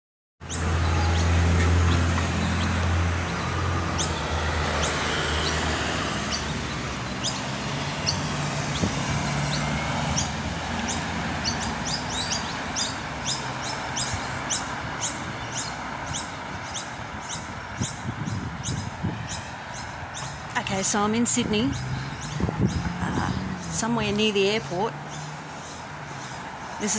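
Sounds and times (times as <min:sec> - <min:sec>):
bird chirping: 0:00.4 - 0:26.9
traffic noise: 0:00.4 - 0:26.9
vehicle engine hum: 0:00.4 - 0:26.9.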